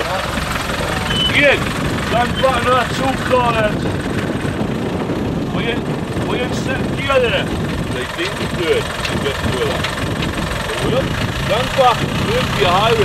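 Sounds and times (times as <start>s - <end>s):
people talking: 0.0s - 3.9s, 5.4s - 13.0s
car engine idling: 0.0s - 13.0s.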